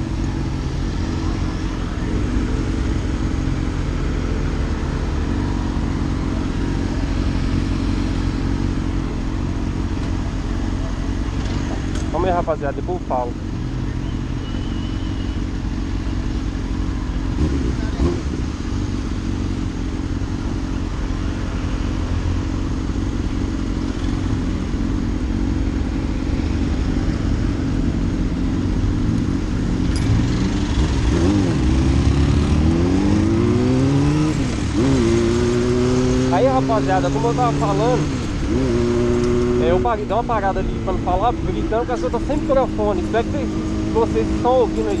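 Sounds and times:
motorcycle engine revving: 0.0 - 45.0.

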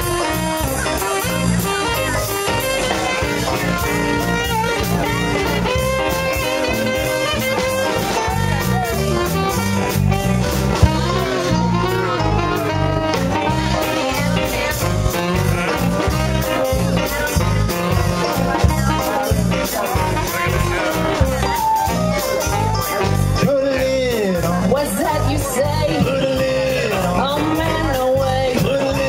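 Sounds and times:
live band playing: 0.0 - 29.0
saxophone: 0.0 - 29.0.

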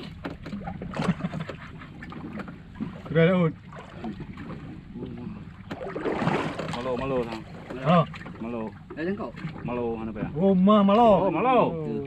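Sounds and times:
sea noise: 0.0 - 12.0
wind: 0.0 - 12.0.

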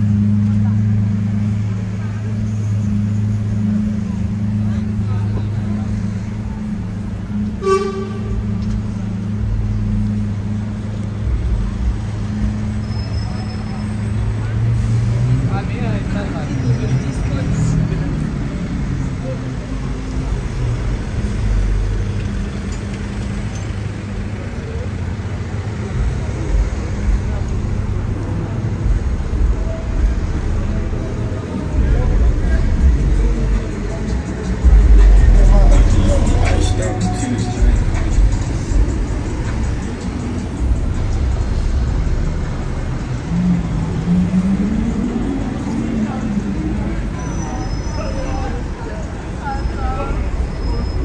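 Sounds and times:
passers-by talking: 0.0 - 51.0
traffic engine hum: 0.0 - 51.0.

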